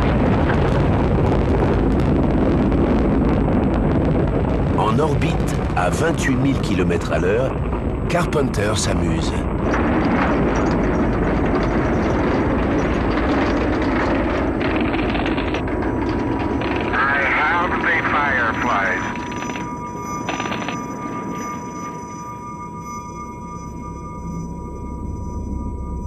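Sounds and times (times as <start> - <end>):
rumble and hiss: 0.0 - 26.0
muffled voice over radio: 16.9 - 19.1
steady beep-like tone: 17.0 - 26.0.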